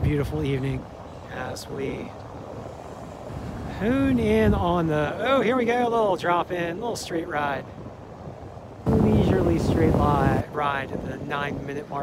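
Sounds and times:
man speaking: 0:00.0 - 0:02.2, 0:03.7 - 0:07.7, 0:08.9 - 0:12.0
faint surf hiss: 0:00.0 - 0:12.0
wind buffeting microphone: 0:00.0 - 0:12.0.

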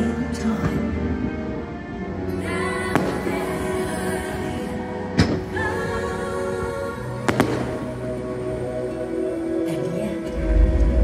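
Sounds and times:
sustained music tones: 0:00.0 - 0:11.0.

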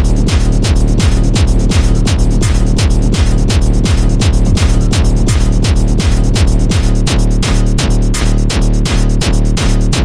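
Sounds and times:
kick drum with dropping pitch: 0:00.0 - 0:09.4
fast techno music: 0:00.0 - 0:10.0
steady low drone: 0:02.6 - 0:08.0.

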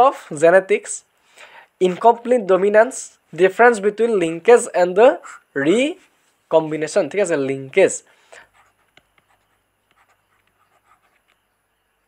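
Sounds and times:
pen scratching on paper: 0:08.5 - 0:11.3.

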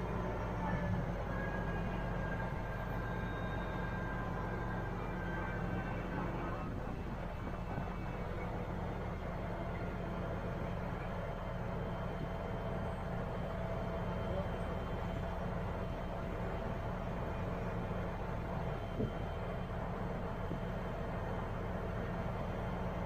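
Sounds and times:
crane diesel engine running: 0:00.0 - 0:23.0.

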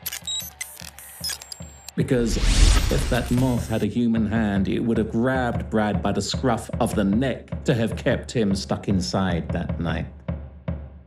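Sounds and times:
electronic glitch and static effects: 0:00.3 - 0:03.8
background music with steady beat: 0:03.0 - 0:11.0.

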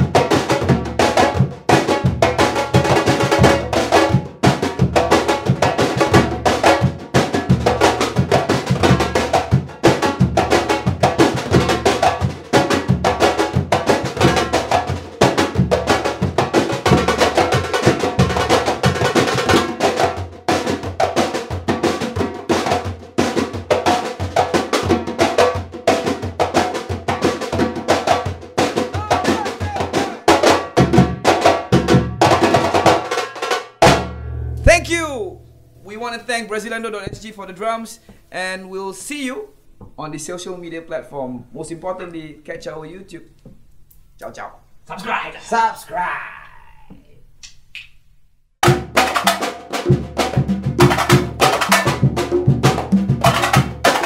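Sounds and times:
percussion ensemble drumming: 0:00.0 - 0:35.4, 0:48.6 - 0:54.0.

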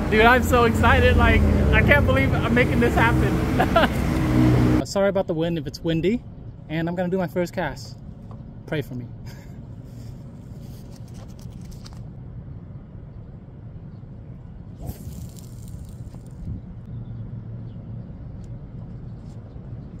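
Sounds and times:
wind buffeting microphone: 0:16.0 - 0:16.9.

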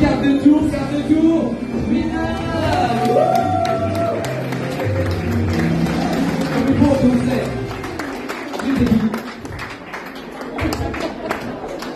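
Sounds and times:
music: 0:00.0 - 0:10.9.

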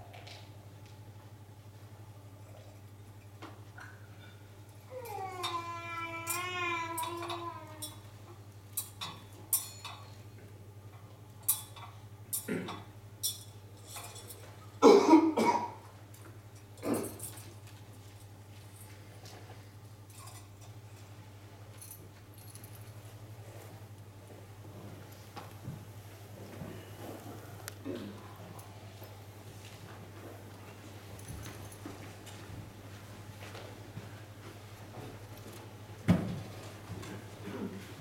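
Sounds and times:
low electrical hum: 0:00.0 - 0:38.0
person coughing: 0:12.5 - 0:12.8, 0:14.8 - 0:15.8, 0:16.8 - 0:17.2, 0:27.8 - 0:28.4, 0:37.4 - 0:37.9.

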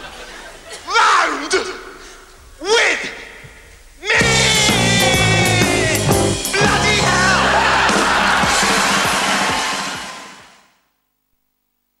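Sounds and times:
cymbals ringing: 0:04.2 - 0:08.9
drum hits: 0:04.2 - 0:10.1
live rock band: 0:04.2 - 0:10.2.

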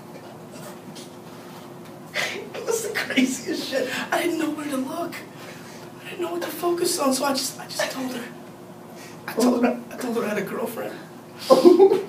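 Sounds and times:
steady hiss: 0:00.5 - 0:12.0.

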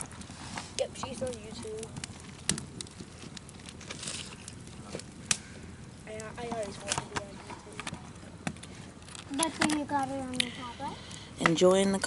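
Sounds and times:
sharp fire pops: 0:00.0 - 0:11.6
campfire crackling: 0:00.0 - 0:12.0.

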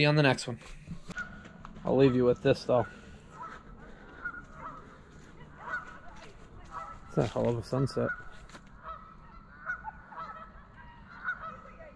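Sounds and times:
distant geese honking: 0:00.7 - 0:11.9.

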